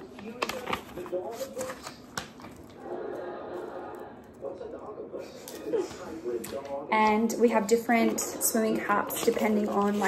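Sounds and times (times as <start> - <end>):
sharp plastic crackles: 0.0 - 2.8
packet rustling and crinkling: 0.0 - 4.6, 8.8 - 10.0.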